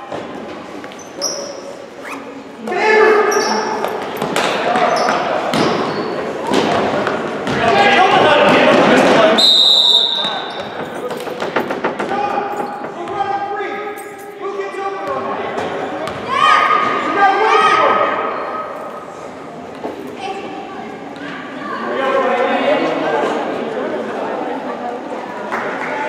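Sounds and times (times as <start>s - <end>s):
sneakers squeaking: 0.0s - 7.7s, 9.2s - 11.3s, 12.4s - 17.0s
referee's whistle blast: 9.4s - 10.6s.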